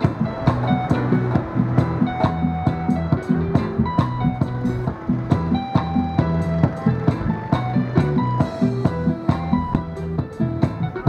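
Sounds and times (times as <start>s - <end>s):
drums struck with sticks: 0.0s - 11.0s
keyboard playing reggae: 0.0s - 11.0s
low bass line: 0.0s - 11.0s.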